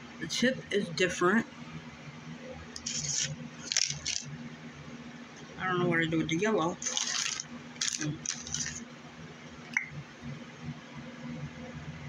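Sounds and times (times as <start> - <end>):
objects rubbing and scraping: 2.8 - 4.3, 6.8 - 8.8.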